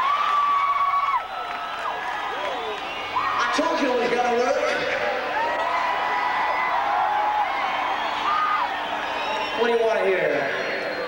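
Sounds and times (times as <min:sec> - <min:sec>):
crowd cheering: 0:00.0 - 0:11.0.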